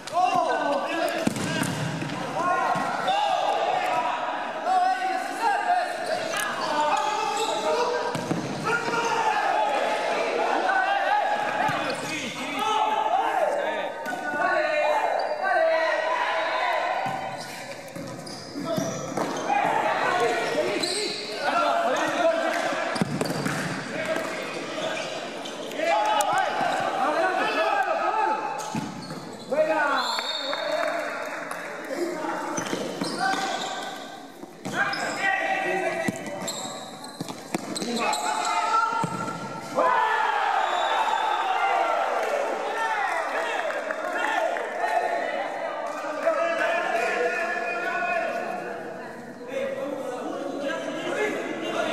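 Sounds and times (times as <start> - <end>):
voices in sports hall: 0.0 - 51.9
ball kicks and bounces echoing: 1.2 - 3.0, 8.0 - 9.1, 22.9 - 24.4, 39.0 - 39.5.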